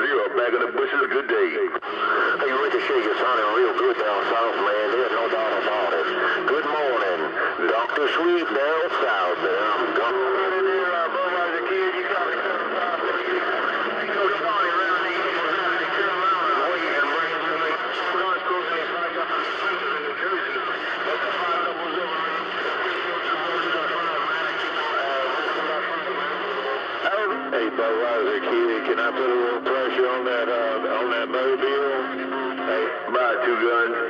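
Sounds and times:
garbled radio voices: 0.0 - 34.0
low steady radio tones: 0.0 - 34.0.

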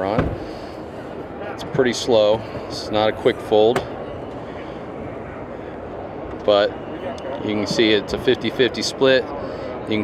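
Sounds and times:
exhibition hall hum: 0.0 - 10.0.

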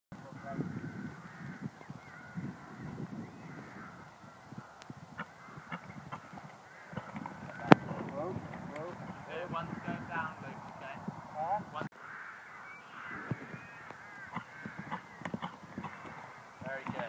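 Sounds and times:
faint calls: 0.2 - 17.0
muffled thuds: 5.7 - 9.0, 13.1 - 17.0.

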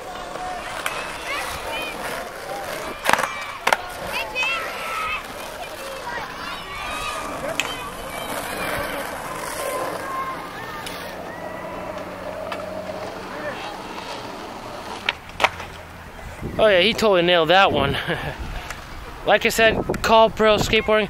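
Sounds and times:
skateboards rolling on concrete: 0.0 - 21.0.

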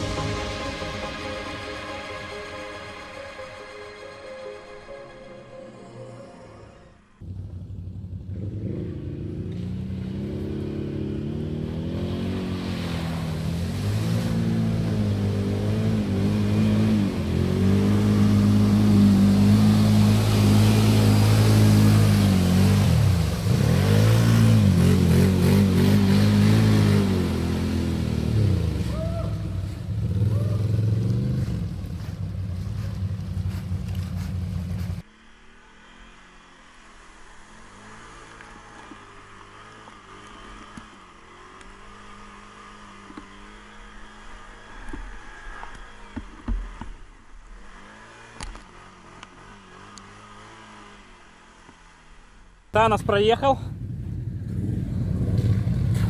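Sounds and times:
atv engine revving: 7.2 - 56.0
mud and water splashing: 9.4 - 35.1, 54.5 - 56.0.

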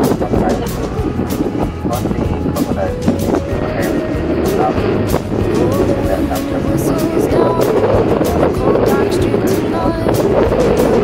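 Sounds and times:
boat engine humming: 0.0 - 11.0
voices: 0.0 - 11.0.

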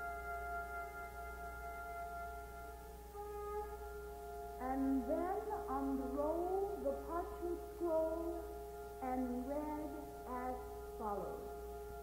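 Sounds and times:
soprano singing sliding phrases: 4.6 - 8.4.

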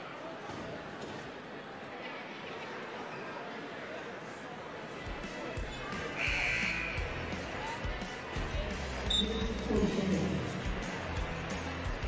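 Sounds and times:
murmur of voices: 0.0 - 12.0
music in gym: 5.1 - 12.0.

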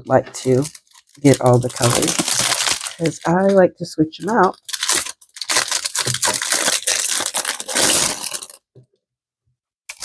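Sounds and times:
plastic bag crinkling: 0.3 - 8.6.

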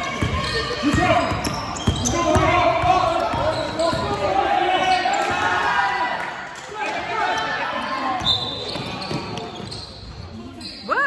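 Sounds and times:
players calling out: 0.0 - 6.0
basketball bouncing on wooden floor: 0.1 - 4.2.

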